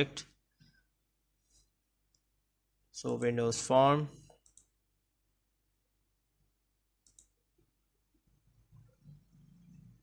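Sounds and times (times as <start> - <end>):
computer mouse clicks: 4.3 - 4.8, 7.0 - 7.4.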